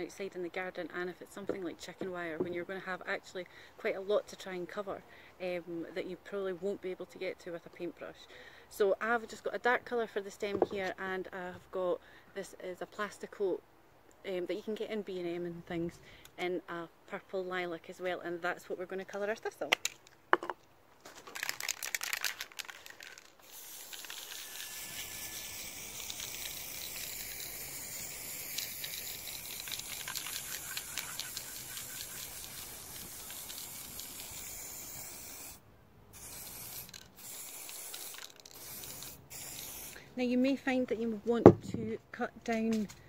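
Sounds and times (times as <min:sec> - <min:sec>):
spray paint hissing: 0:23.4 - 0:35.6, 0:36.2 - 0:40.0.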